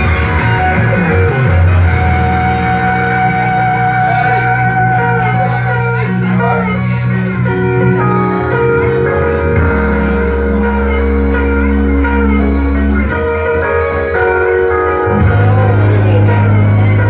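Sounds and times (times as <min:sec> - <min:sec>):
electric keyboard chords: 0:00.0 - 0:17.0.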